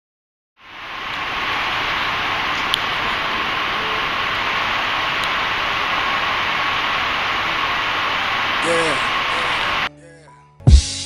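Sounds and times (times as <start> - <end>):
faint steady hum: 0.6 - 9.9
person speaking: 8.6 - 10.4.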